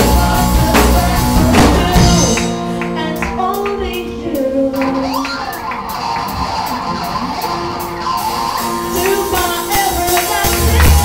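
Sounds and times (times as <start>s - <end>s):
electric guitar: 0.0s - 11.0s
live band playing: 0.0s - 11.0s.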